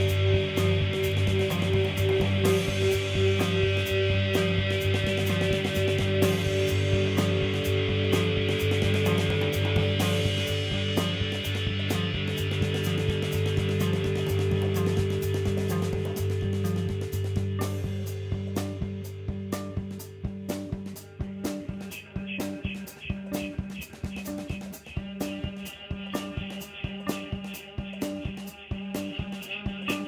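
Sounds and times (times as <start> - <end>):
steady drum hits: 0.0 - 21.8
low drone: 0.0 - 23.6
live band instrumental music: 0.0 - 30.0.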